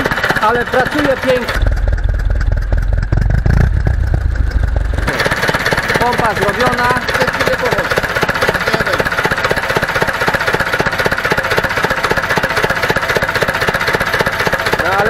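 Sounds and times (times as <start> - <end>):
diesel tractor engine idling: 0.0 - 15.0
valve train clatter: 0.0 - 15.0.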